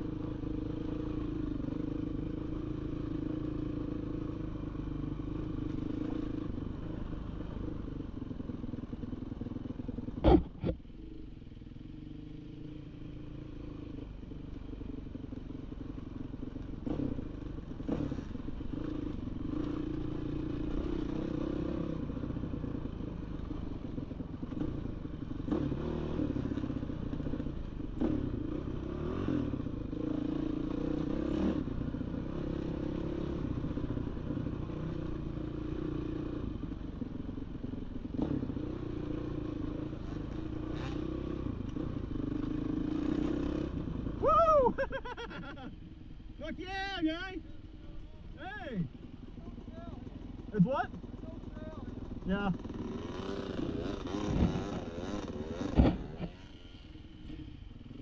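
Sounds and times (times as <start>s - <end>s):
dirt bike engine running: 0.0s - 58.0s.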